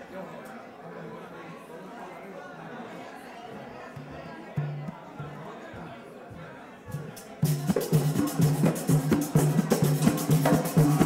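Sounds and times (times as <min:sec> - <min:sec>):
audience chattering: 0:00.0 - 0:11.0.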